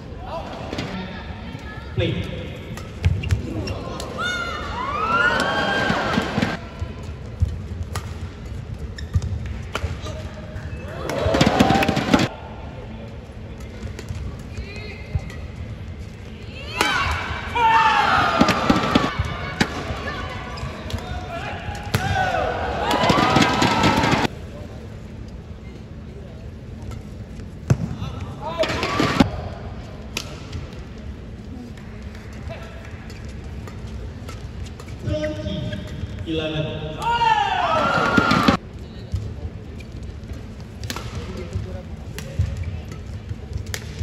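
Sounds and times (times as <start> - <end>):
racket hitting shuttlecock: 7.4 - 8.3, 42.1 - 44.0
shoes squeaking on court: 8.5 - 9.6.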